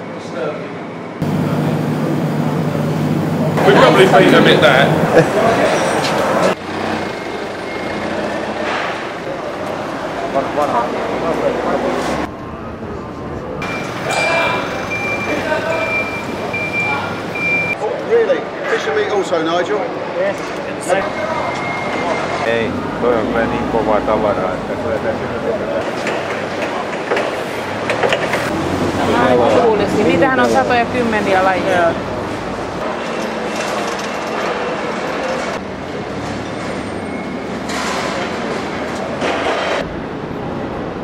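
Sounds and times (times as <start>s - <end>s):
reversing alarm beeping: 13.6s - 17.8s, 21.0s - 23.4s.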